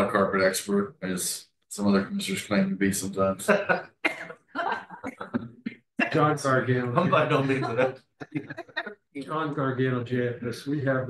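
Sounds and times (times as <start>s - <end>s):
person coughing: 4.1s - 4.3s.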